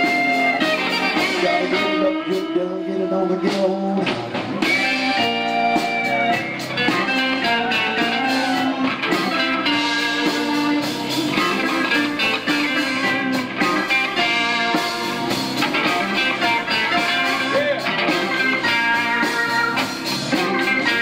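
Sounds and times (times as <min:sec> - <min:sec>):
blues-rock band playing: 0:00.0 - 0:21.0.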